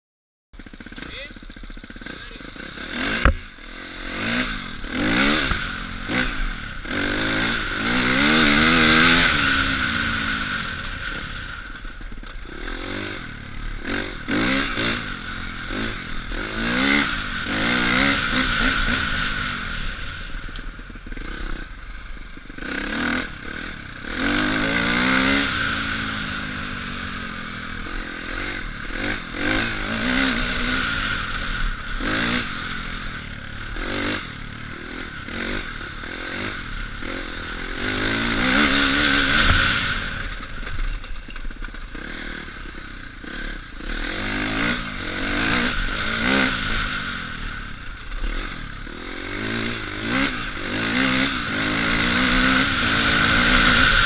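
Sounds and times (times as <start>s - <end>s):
bike knocking and rattling: 0.6s - 3.7s, 38.2s - 42.4s
motorcycle engine revving: 0.6s - 54.0s.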